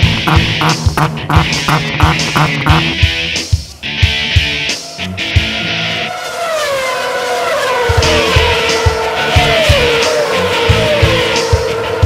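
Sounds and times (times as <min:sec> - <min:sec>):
music drumbeat: 0:00.0 - 0:05.9, 0:07.8 - 0:12.0
race car engine: 0:00.0 - 0:12.0.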